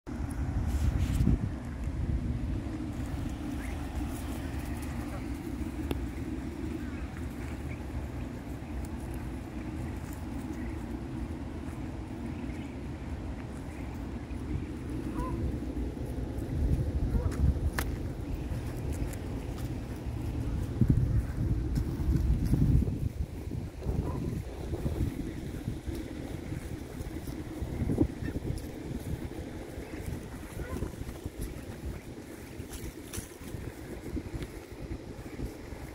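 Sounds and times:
steady low rumble: 0.1s - 35.9s
wind buffeting microphone: 0.1s - 35.9s
ducklings peeping: 2.6s - 35.9s.

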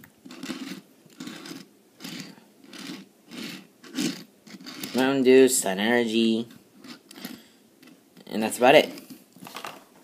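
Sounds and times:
toy car wheels rolling on table: 0.3s - 5.1s, 6.8s - 8.0s.

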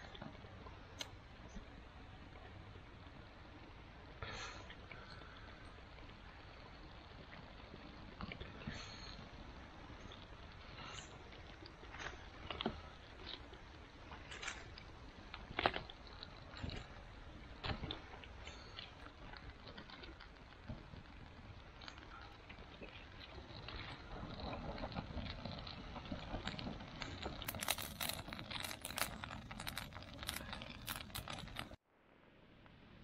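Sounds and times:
fire crackling and popping: 0.0s - 31.8s
dry twigs rustling: 25.8s - 31.8s.

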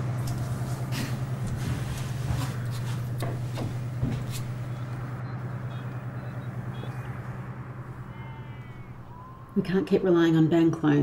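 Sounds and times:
steady low hum: 0.0s - 10.9s
faint high-pitched calls: 8.0s - 9.6s.

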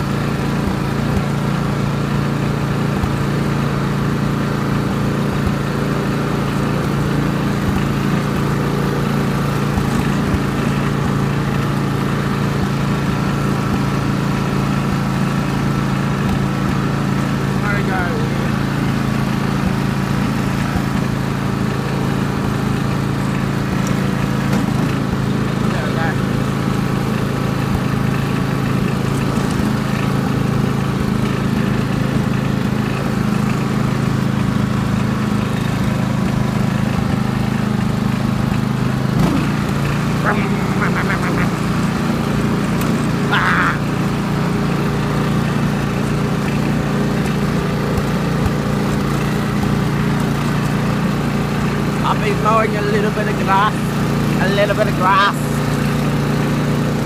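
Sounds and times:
lawn mower engine running: 0.0s - 57.0s.

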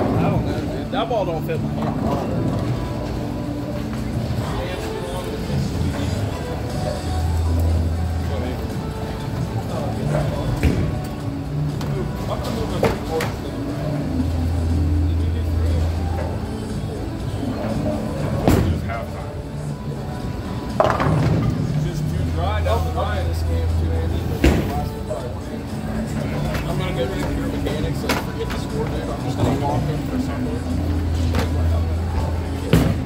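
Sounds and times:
background music: 0.0s - 33.0s.

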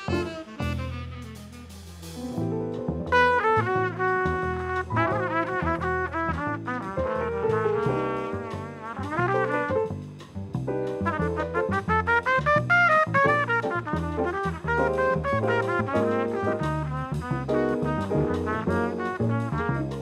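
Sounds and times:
saxophone melody: 0.0s - 2.5s
drums: 0.0s - 20.0s
piano: 0.0s - 20.0s
upright bass: 0.0s - 20.0s.

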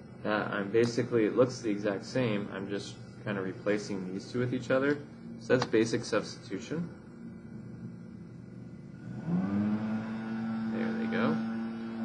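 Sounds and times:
machine motor starting up and humming: 7.2s - 12.0s.

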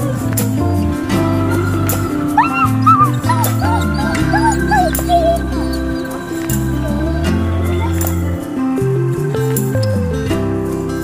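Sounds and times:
background music: 0.0s - 11.0s
dogs whining and yipping: 1.1s - 7.1s.

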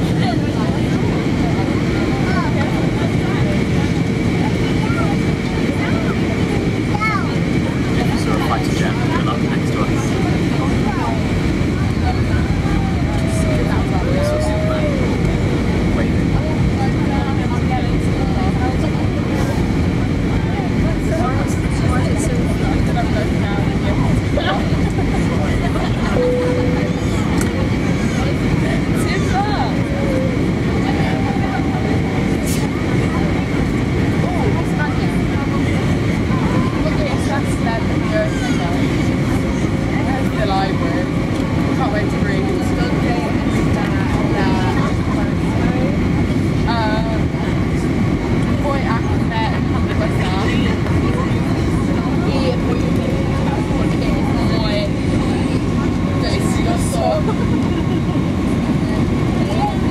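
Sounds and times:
airliner cabin engine rush: 0.0s - 59.9s
faint passenger voices: 0.0s - 59.9s.

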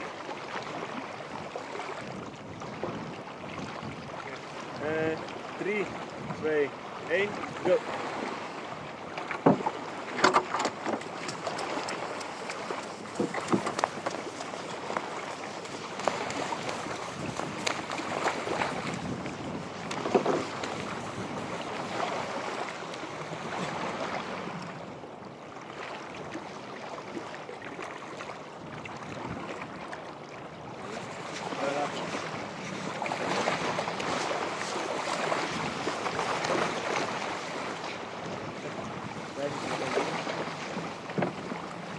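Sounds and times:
waves at shoreline: 0.0s - 41.9s
wind: 0.0s - 41.9s
dull knocks and thumps: 9.3s - 14.3s, 41.1s - 41.5s.

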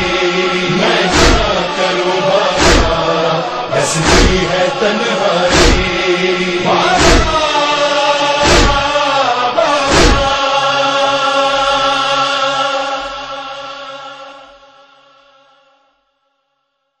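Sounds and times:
voices chanting a long note: 0.0s - 16.3s
chest-beat thump: 1.1s - 1.6s, 2.6s - 3.0s, 4.0s - 4.5s, 5.5s - 6.0s, 8.4s - 8.9s, 9.9s - 10.4s.

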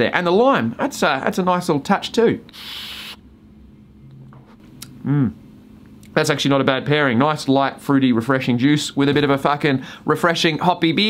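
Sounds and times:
breathy rush of air through vape: 2.5s - 3.2s
faint short hum: 3.8s - 5.4s.

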